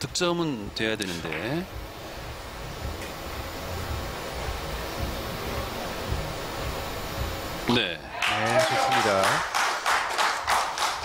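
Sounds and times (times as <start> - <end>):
low hiss and rumble of hall: 0.0 - 11.0.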